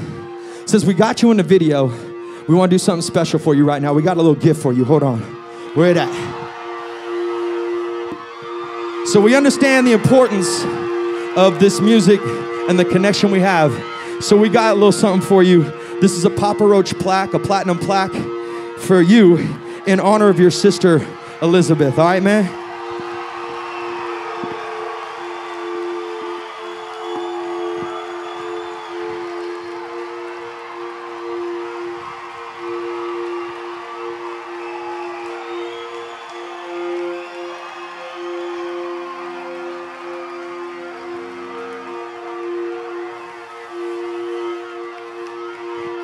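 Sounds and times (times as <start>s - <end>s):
concert crowd cheering and shouting: 0.0s - 46.0s
synthesizer drone: 0.0s - 46.0s.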